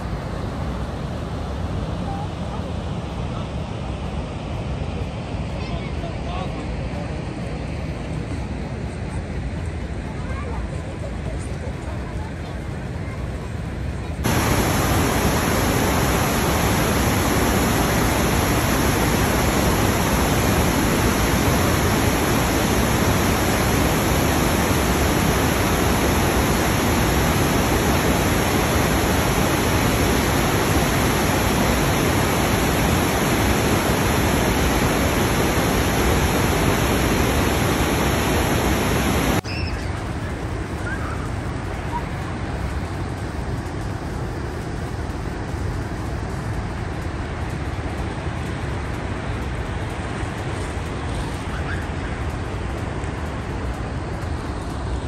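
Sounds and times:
waterfall rushing: 0:14.2 - 0:39.4.

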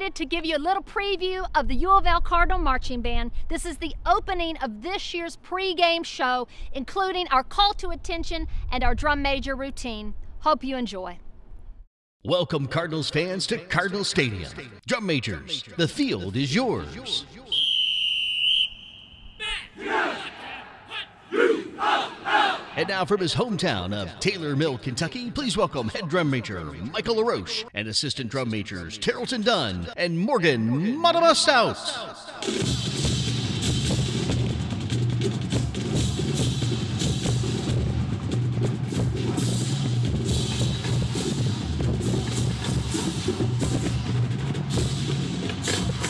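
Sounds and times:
high whistle note: 0:17.5 - 0:19.7
band members yelling calls: 0:19.4 - 0:22.9
snare drum: 0:32.6 - 0:46.0.

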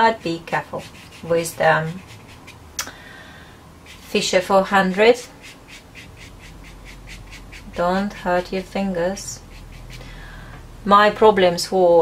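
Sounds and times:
sponge tool rubbing on paper: 0:00.0 - 0:02.6, 0:03.8 - 0:10.0.

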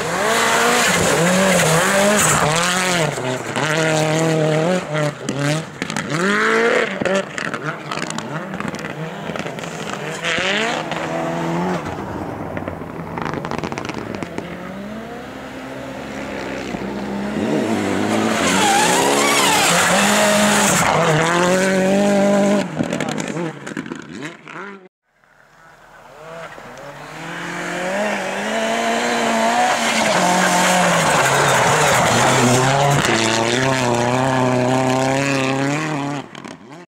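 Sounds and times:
rally car engine revving: 0:00.0 - 0:24.9, 0:25.5 - 0:36.8.

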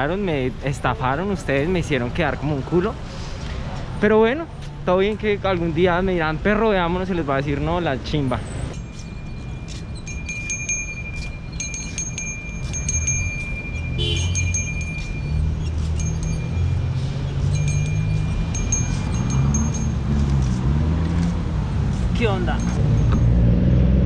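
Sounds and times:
small bells jingling: 0:08.7 - 0:21.0, 0:21.9 - 0:23.5.

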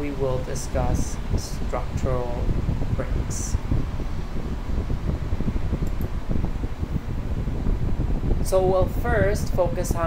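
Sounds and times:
low rumbling fan noise: 0:00.0 - 0:10.0.

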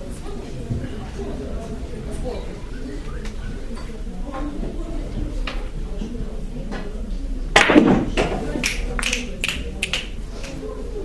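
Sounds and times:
billiard balls clacking: 0:07.6 - 0:09.3.

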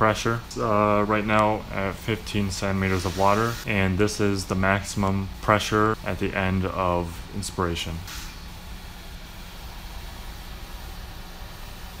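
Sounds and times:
ventilator air hiss: 0:00.0 - 0:12.0
ventilator blower hum: 0:00.0 - 0:12.0.

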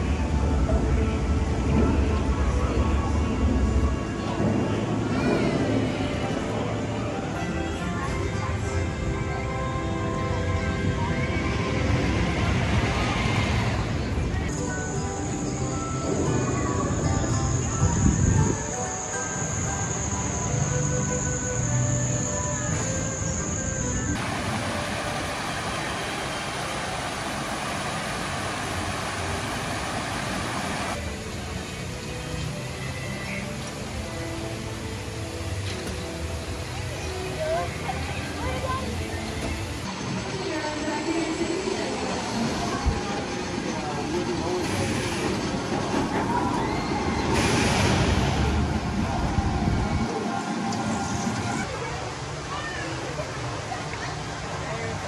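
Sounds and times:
background music: 0:00.0 - 0:51.6
crowd chatter: 0:00.0 - 0:55.0
ride cars rolling on track: 0:00.0 - 0:55.0.

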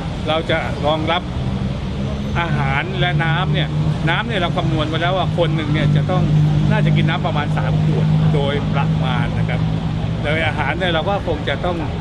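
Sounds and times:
road traffic engine hum: 0:00.0 - 0:12.0
man speaking: 0:02.3 - 0:12.0.

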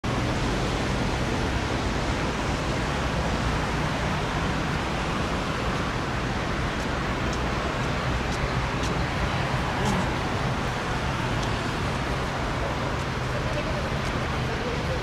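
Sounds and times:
distant city ambience: 0:00.0 - 0:15.0.

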